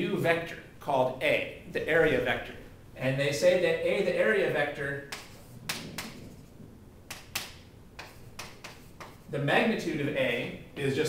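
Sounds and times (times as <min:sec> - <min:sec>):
chalk tapping on chalkboard: 0:05.1 - 0:06.5, 0:07.1 - 0:09.3.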